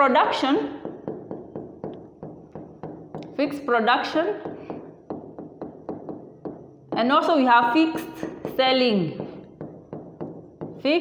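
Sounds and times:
stylus tapping on glass screen: 0.8 - 3.4, 4.4 - 7.1, 9.2 - 10.8.

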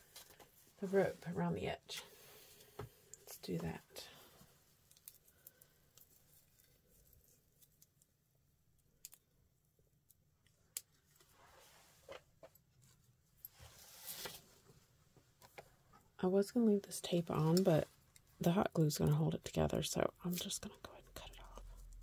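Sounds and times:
hands handling rope: 4.4 - 8.2.

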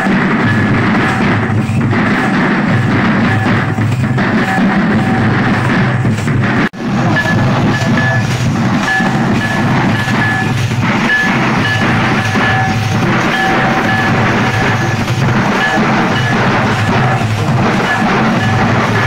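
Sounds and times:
barrel drums beaten with sticks: 0.0 - 19.0.

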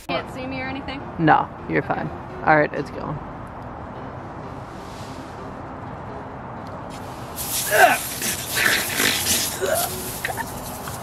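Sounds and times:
water spray hissing: 6.9 - 11.0
man grunting: 7.7 - 9.9.

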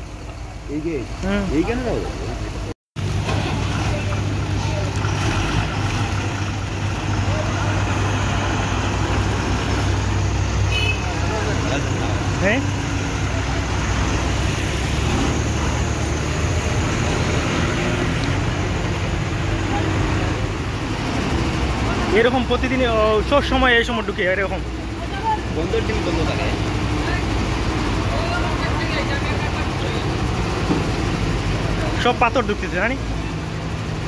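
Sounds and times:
diesel trucks idling: 0.0 - 34.0.

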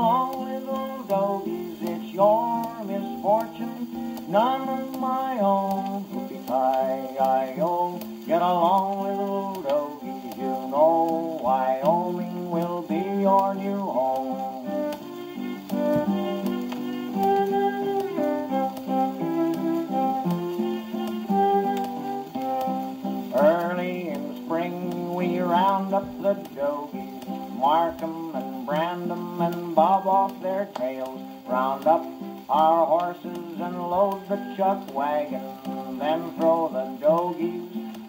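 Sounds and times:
old cowboy song with guitar: 0.0 - 38.0
record surface crackle: 0.0 - 38.0.

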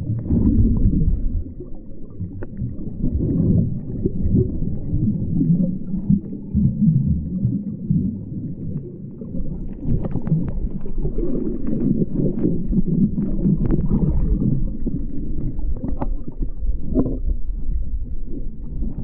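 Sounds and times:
crackles and clicks: 0.0 - 19.0
underwater churning rumble: 0.0 - 19.0.

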